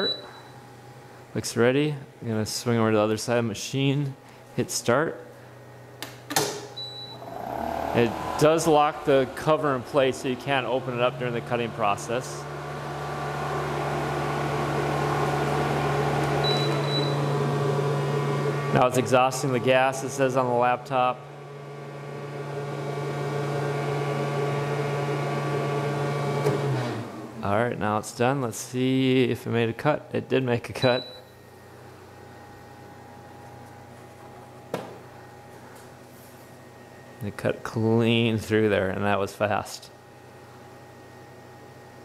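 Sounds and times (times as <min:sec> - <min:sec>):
laser cutter fans humming: 0:07.0 - 0:16.4
thin high tone: 0:07.1 - 0:10.4
low rumble: 0:07.2 - 0:11.4.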